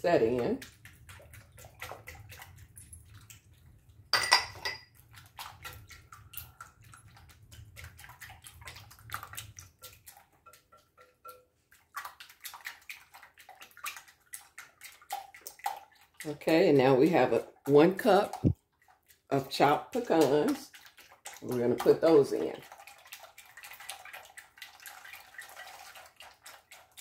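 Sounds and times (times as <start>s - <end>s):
liquid sloshing: 0.0s - 27.0s
whisk clicking against glass bowl: 9.8s - 11.5s.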